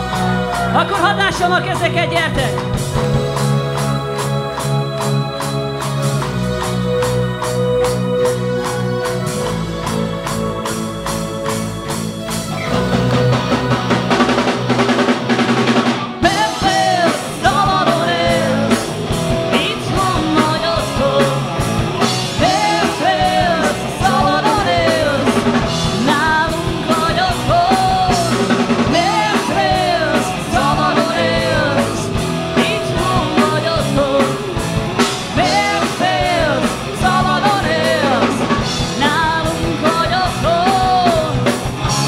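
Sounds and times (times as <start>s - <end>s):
drum kit: 0.0s - 42.0s
electric guitars: 0.0s - 42.0s
man singing: 16.2s - 41.5s.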